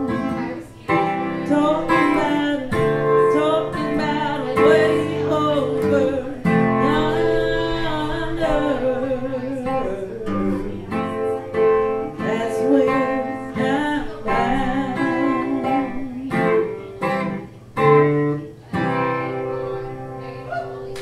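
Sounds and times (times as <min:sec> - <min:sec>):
woman singing slow song: 0:00.0 - 0:17.2
strummed acoustic guitar: 0:00.0 - 0:21.0.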